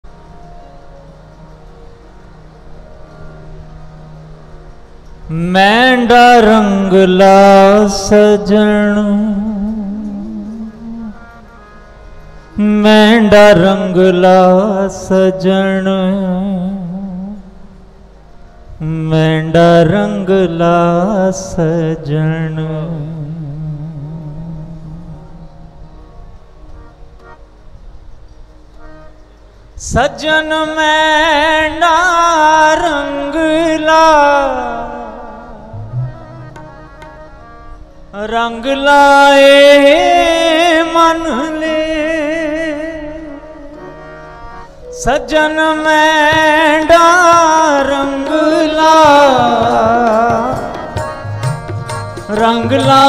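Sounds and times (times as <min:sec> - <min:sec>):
harmonium sustained notes: 0:00.0 - 0:53.0.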